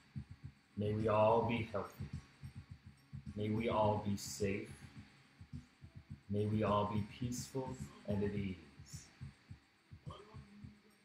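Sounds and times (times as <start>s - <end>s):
faint low thumps: 0.0s - 10.8s.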